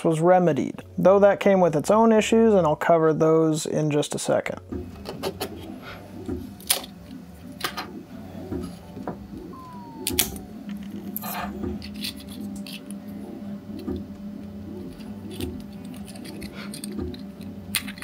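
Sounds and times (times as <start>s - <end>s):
background music with soft beat: 4.2s - 18.0s.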